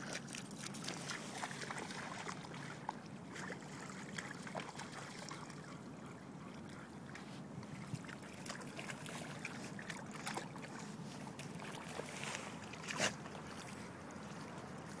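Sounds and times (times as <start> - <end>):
dogs splashing in mud: 0.0 - 15.0.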